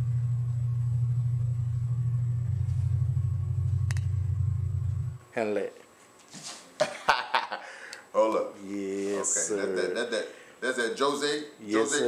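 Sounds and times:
low rumble turning into flutter: 0.0 - 5.2.

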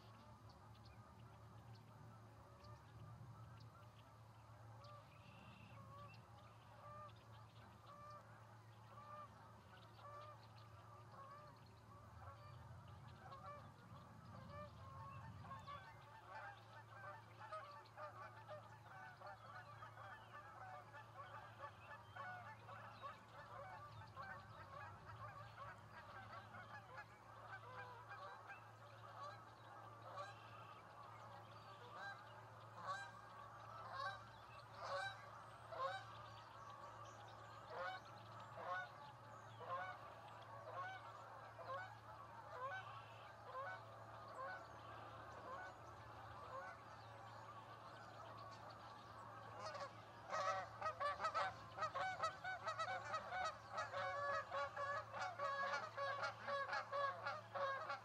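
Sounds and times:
flock of birds calling: 0.0 - 58.0.

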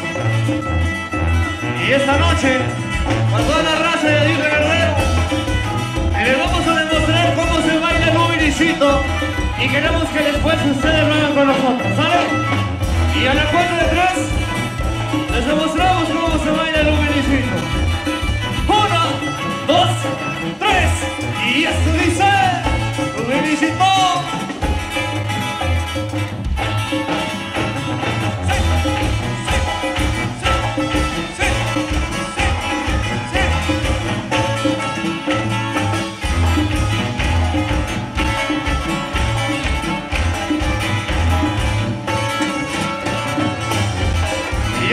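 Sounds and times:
live band playing: 0.0 - 44.9
tuba bass line: 0.0 - 44.9.

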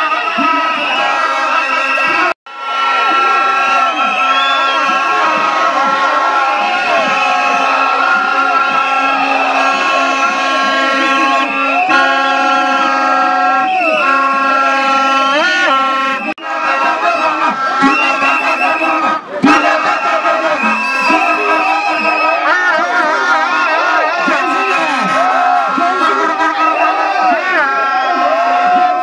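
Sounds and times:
blaring horn tones: 0.0 - 29.0
crowd shouting and chanting: 0.0 - 29.0.

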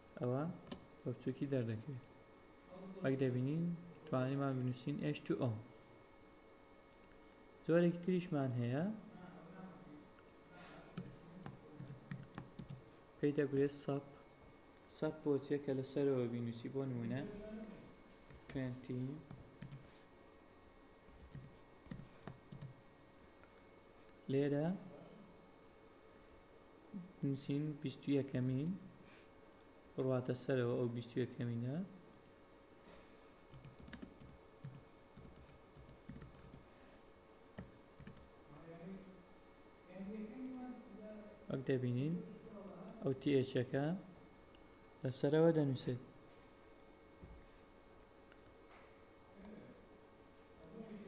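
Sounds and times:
faint keyboard typing: 10.9 - 12.9, 18.2 - 20.0, 21.2 - 22.8, 33.4 - 36.8, 37.5 - 38.3.

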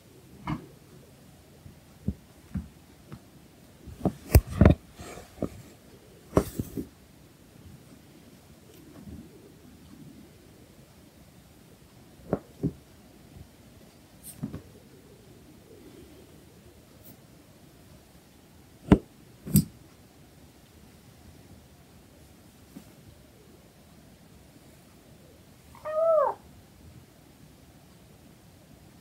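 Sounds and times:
kitten meowing: 25.8 - 26.4.

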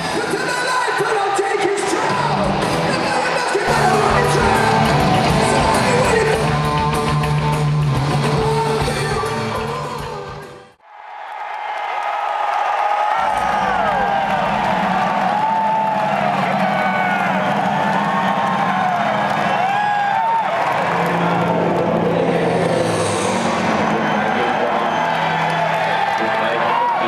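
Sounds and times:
crowd cheering and whistling: 0.0 - 27.0.

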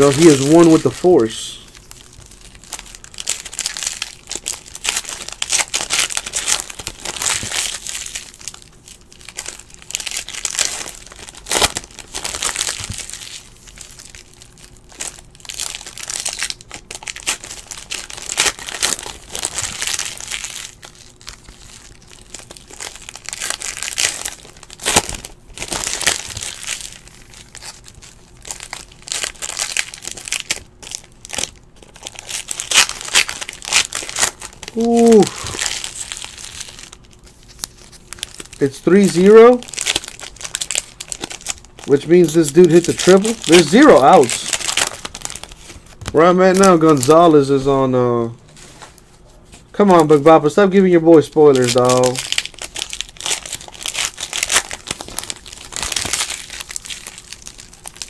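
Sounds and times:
foil wrappers crinkling: 0.0 - 47.9, 48.5 - 58.0
foil tearing snaps: 15.0 - 47.2, 51.5 - 58.0.

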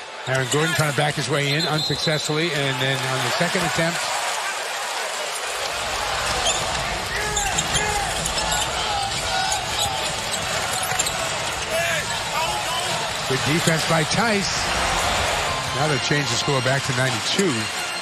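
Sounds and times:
arena crowd rumble: 0.0 - 18.0.

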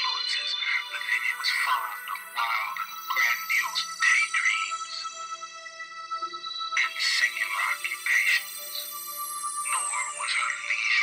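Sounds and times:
synthesizer music: 0.0 - 11.0.

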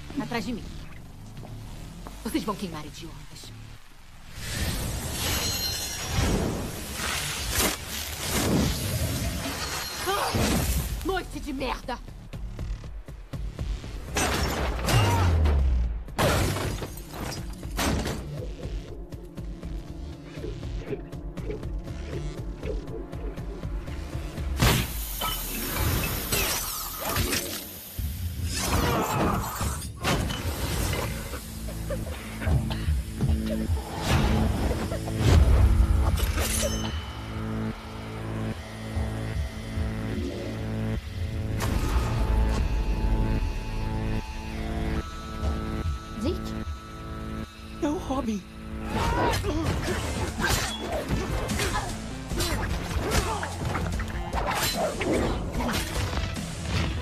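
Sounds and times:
glass shattering and breaking: 5.2 - 6.4, 16.2 - 18.2, 24.6 - 27.4
background score music: 10.5 - 29.4, 30.0 - 57.0.

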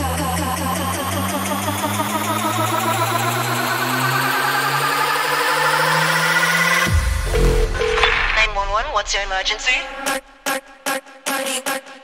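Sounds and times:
rising synth sweep: 0.2 - 8.2
deep bass: 6.8 - 9.7.

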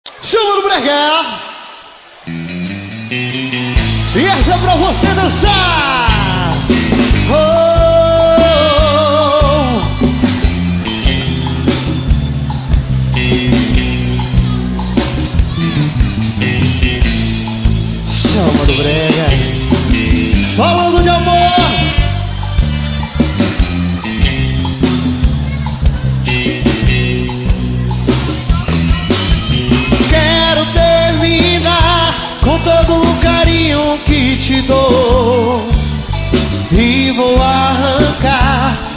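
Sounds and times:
live band playing: 0.1 - 38.9
electric guitar: 1.6 - 38.9
steady bass line: 2.2 - 38.9
drum kit beat: 2.6 - 38.9.

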